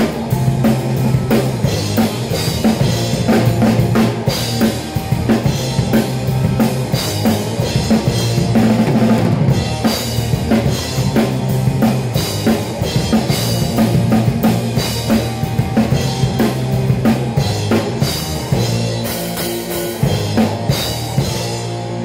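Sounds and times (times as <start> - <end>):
bass guitar: 0.0 - 22.0
drum kit beat: 0.0 - 22.0
electric guitars: 0.0 - 22.0.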